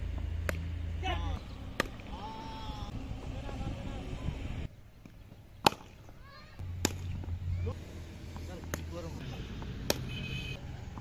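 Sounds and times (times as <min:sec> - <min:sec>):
cricket bat striking ball: 0:01.7 - 0:02.1, 0:05.6 - 0:07.4, 0:09.6 - 0:10.1.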